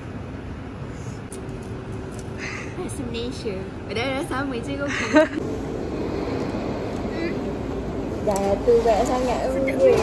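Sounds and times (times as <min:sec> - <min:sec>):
woman's voice: 0:08.2 - 0:10.0.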